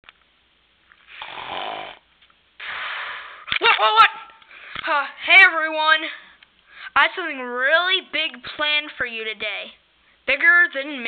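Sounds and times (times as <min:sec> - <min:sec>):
person mimicking a snore: 0:01.1 - 0:02.0.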